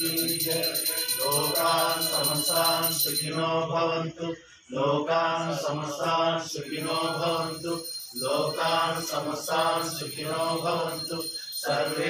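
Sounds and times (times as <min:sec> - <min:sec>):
hymn chanted in sung phrases: 0:00.0 - 0:12.0.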